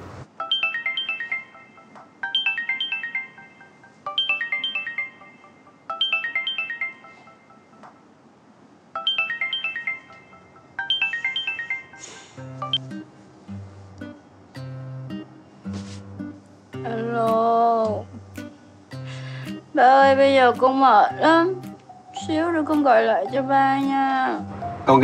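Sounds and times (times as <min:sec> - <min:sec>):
melodic phone ringtone: 0:00.4 - 0:08.1, 0:08.9 - 0:13.1, 0:20.9 - 0:25.0.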